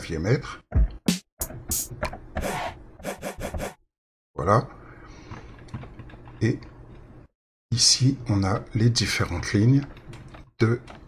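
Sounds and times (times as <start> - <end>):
drum machine hits: 0.7 - 3.8.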